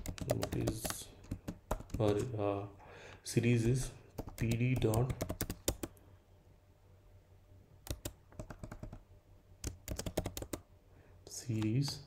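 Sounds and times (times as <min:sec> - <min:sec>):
computer keyboard typing: 0:00.0 - 0:02.3, 0:04.1 - 0:06.0, 0:07.8 - 0:09.0, 0:09.6 - 0:10.6.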